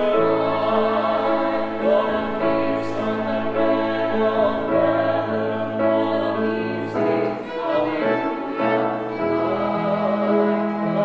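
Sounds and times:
violin and cello: 0.0s - 11.0s
vocal trio singing in harmony: 0.0s - 11.0s.

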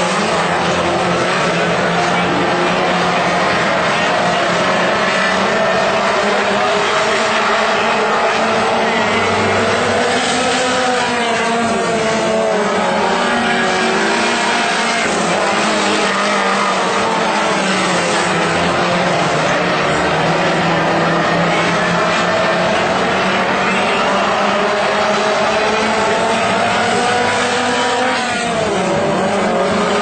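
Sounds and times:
race car engines: 0.0s - 30.0s.

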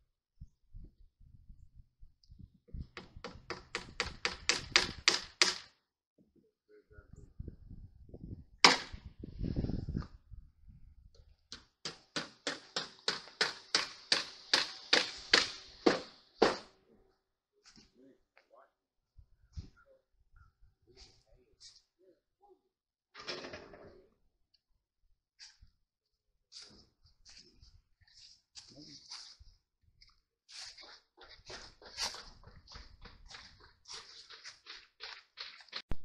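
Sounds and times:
hammer nailing metal: 11.5s - 16.7s.

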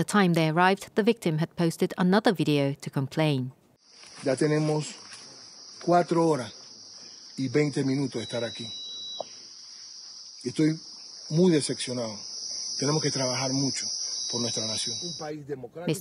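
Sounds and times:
high-pitched insect chorus: 3.8s - 16.0s
man speaking: 4.2s - 5.0s, 5.8s - 6.6s, 7.4s - 8.8s, 10.4s - 12.2s, 12.8s - 16.0s.

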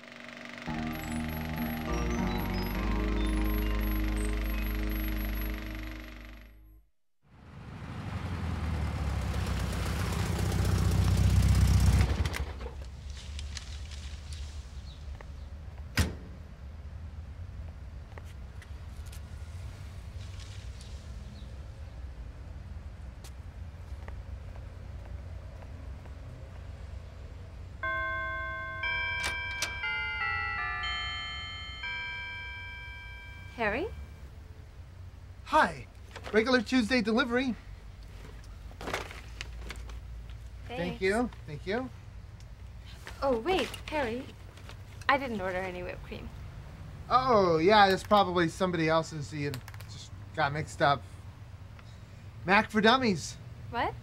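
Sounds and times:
doorbell chiming a tune: 0.7s - 5.9s, 27.8s - 34.2s
short music sting: 0.7s - 6.1s.

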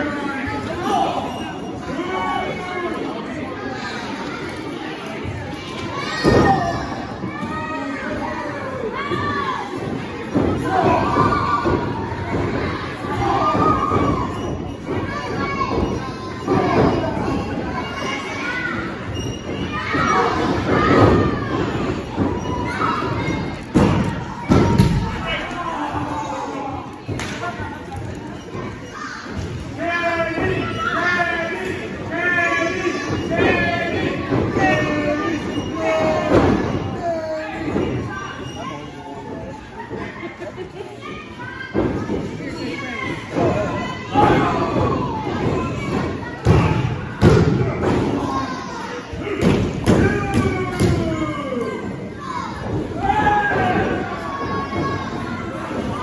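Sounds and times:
crowd chatter: 0.0s - 56.0s
crowd voices shouting: 41.4s - 56.0s.

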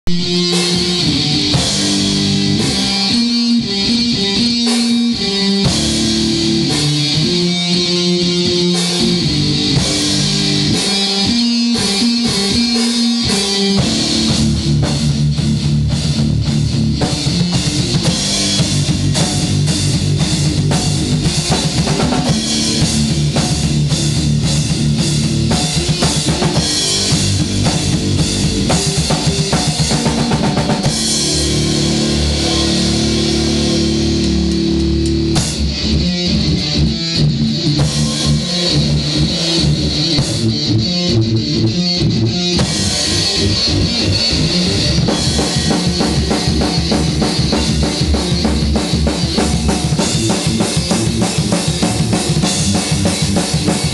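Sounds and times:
drum kit beat: 0.0s - 53.9s
electric guitar riffs: 0.0s - 53.9s.

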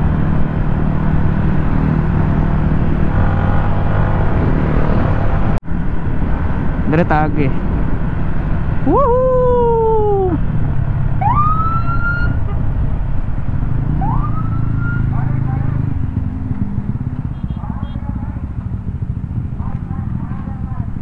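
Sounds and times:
wind: 0.0s - 21.0s
siren whoops: 8.9s - 10.4s, 11.2s - 12.5s, 14.0s - 15.2s
scooter engine rumble: 15.1s - 21.0s.

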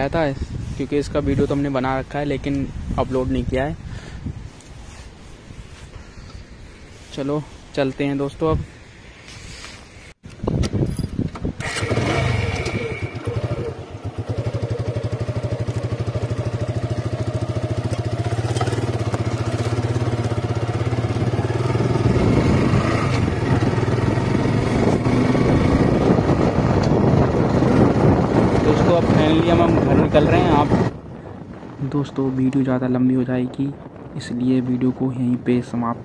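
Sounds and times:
motorcycle engine: 11.6s - 31.0s.

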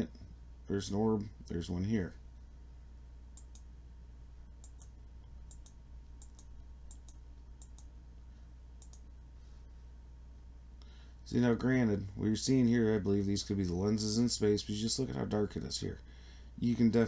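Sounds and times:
low steady hum: 0.0s - 17.0s
computer mouse clicks: 3.4s - 3.7s, 4.6s - 7.9s, 8.8s - 9.1s.

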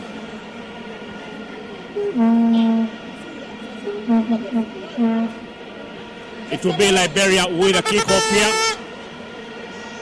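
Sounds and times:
crowd background: 0.0s - 9.8s
horn blowing: 2.1s - 2.9s, 7.6s - 8.8s.

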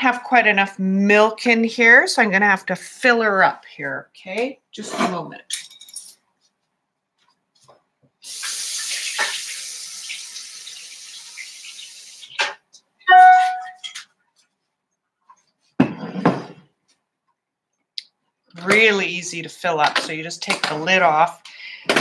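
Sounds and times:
water running from tap: 8.2s - 12.5s
short ringing tone: 13.1s - 13.8s.

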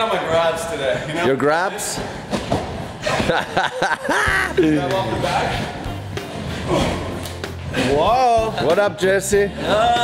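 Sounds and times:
laughter: 3.0s - 4.8s.

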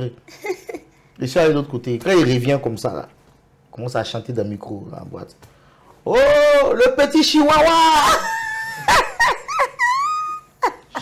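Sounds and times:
man imitating small dog yelps: 6.1s - 6.8s, 7.5s - 8.3s.

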